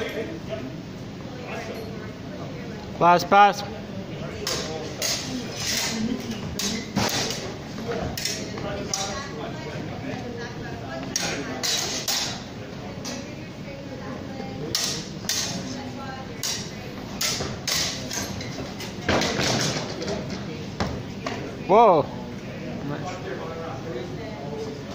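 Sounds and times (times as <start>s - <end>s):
voices talking in background: 0.0s - 24.9s.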